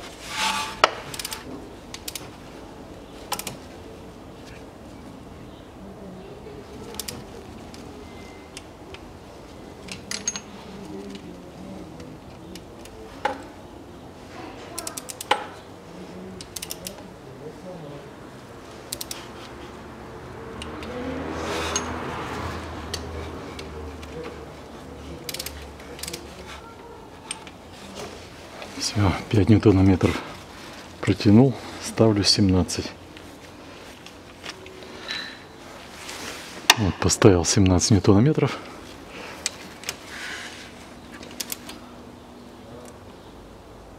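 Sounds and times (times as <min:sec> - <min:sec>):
metallic wrench clicks: 0:16.4 - 0:17.0, 0:18.9 - 0:19.2, 0:25.3 - 0:26.2
handling rustle: 0:30.0 - 0:32.0, 0:33.0 - 0:36.7.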